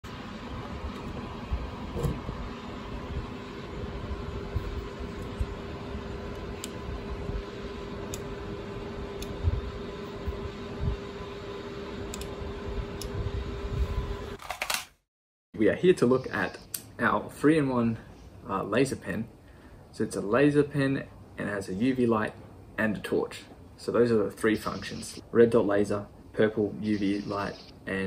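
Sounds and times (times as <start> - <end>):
low background hum: 0.1 - 14.8, 15.6 - 28.0.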